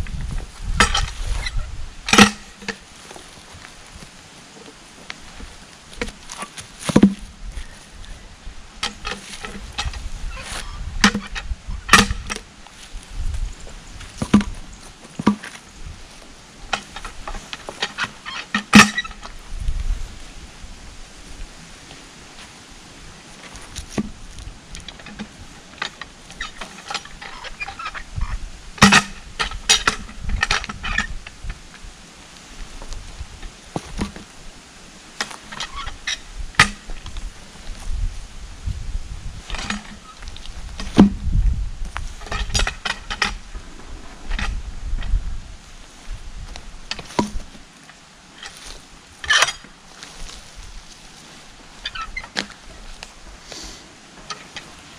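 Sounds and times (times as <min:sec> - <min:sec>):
log rolling over ground: 0:00.0 - 0:08.1, 0:08.8 - 0:20.4, 0:21.2 - 0:53.4
footsteps in dry leaves: 0:02.8 - 0:08.3, 0:45.2 - 0:53.9.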